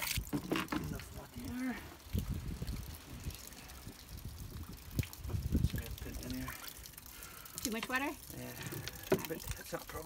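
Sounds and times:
wind buffeting microphone: 0.9s - 6.5s.

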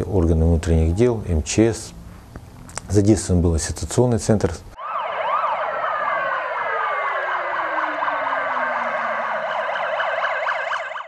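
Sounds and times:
emergency vehicle sirens: 4.8s - 11.0s.

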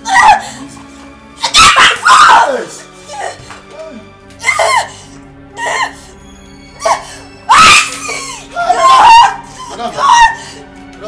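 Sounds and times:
woman screaming: 0.0s - 0.4s, 1.4s - 3.4s, 4.4s - 5.0s, 6.8s - 10.6s
background music: 0.0s - 11.0s
woman crying out: 4.4s - 6.1s.

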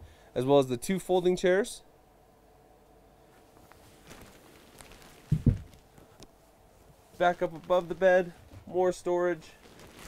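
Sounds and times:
rustling and handling noises: 3.2s - 10.0s
bed platform thump: 5.3s - 5.8s.

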